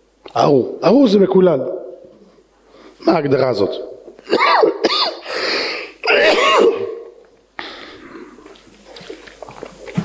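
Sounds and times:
man coughing and clearing throat: 0:04.2 - 0:05.3, 0:06.0 - 0:07.2.

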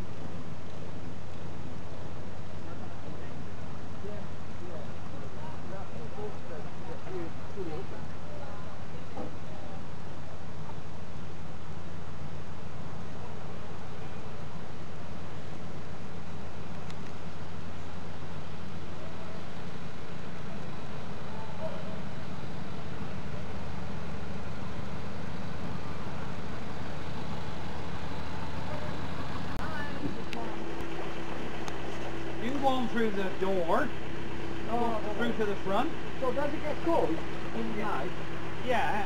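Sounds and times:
boat engine humming: 0:00.0 - 0:39.0.

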